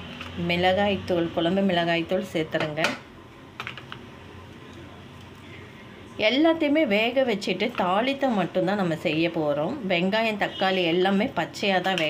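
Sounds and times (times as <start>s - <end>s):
woman's voice: 0.4s - 3.0s, 6.2s - 12.0s.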